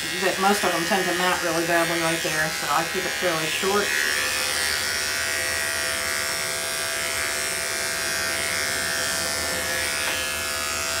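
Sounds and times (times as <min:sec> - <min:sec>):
electric clippers humming: 0:00.0 - 0:11.0.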